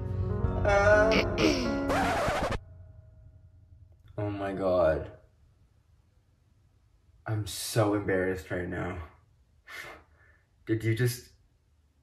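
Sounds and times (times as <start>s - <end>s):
man singing: 0.6s - 1.8s.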